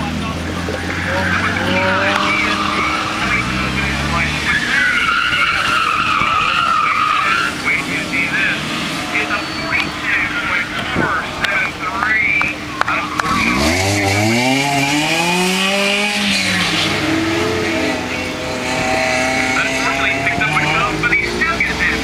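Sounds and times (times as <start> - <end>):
car engine: 0.0 - 22.0
car tyres squealing: 0.3 - 22.0.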